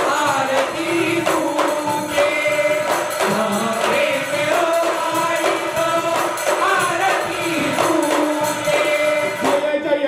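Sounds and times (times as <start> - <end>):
hand cymbals jingling: 0.0 - 9.7
clay-pot drums beating: 0.0 - 9.9
men singing in unison: 0.0 - 10.0.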